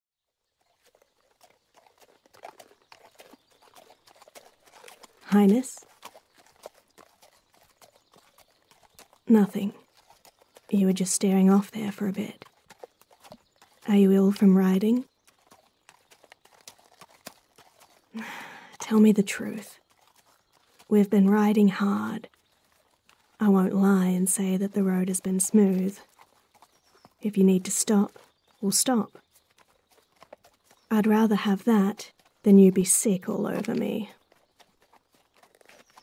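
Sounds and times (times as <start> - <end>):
horse hooves clip-clopping: 0.4 - 36.0.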